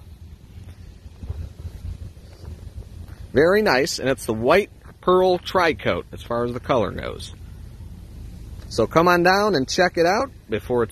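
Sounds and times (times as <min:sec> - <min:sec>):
wind buffeting microphone: 0:00.0 - 0:08.6.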